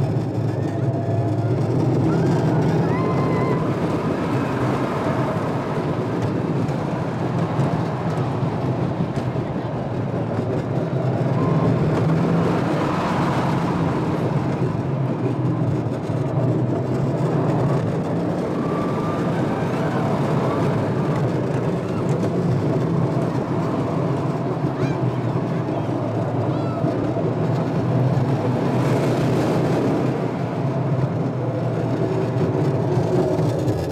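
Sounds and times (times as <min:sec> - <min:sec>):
roller coaster wheels rumbling: 0:00.0 - 0:33.9.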